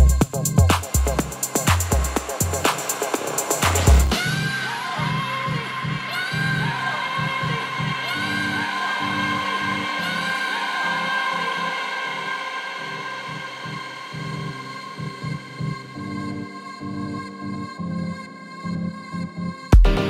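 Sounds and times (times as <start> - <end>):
broken bass pulse: 0.0 - 4.2
electronic dance music: 0.0 - 15.5.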